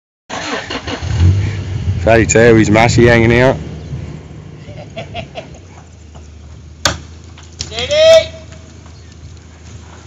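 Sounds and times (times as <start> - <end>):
vehicle engine droning: 0.3 - 7.7
rustling: 4.8 - 10.0.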